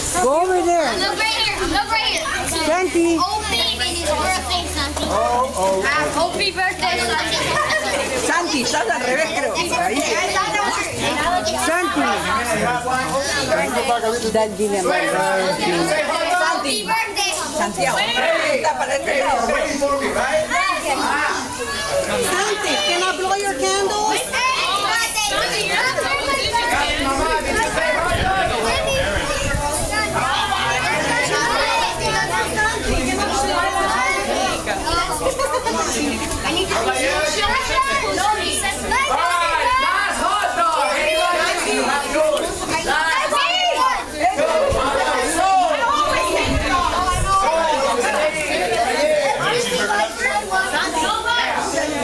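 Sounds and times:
chatter of children and adults: 0:00.0 - 0:52.0.

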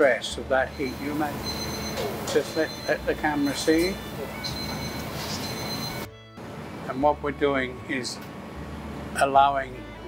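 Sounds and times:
background music: 0:02.5 - 0:10.0.

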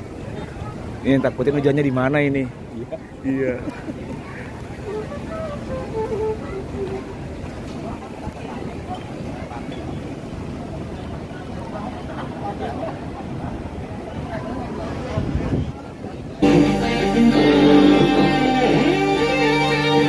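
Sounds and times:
faint voices talking: 0:00.0 - 0:20.0.

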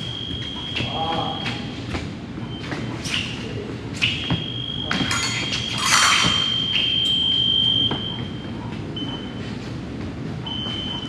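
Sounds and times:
fencing blades clattering: 0:04.9 - 0:06.8.

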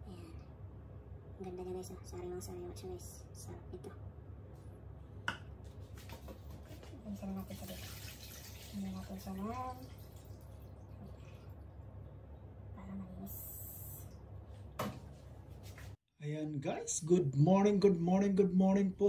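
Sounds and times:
water splashing in steel bowl: 0:07.2 - 0:11.1.

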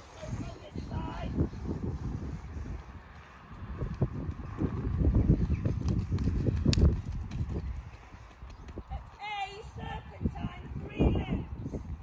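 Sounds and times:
horse hoofbeats trotting: 0:02.4 - 0:10.1.

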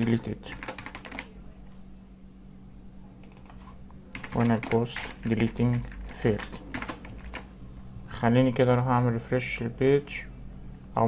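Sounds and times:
low electrical hum: 0:00.0 - 0:11.0
keyboard keystrokes: 0:00.1 - 0:01.3, 0:03.2 - 0:07.5.

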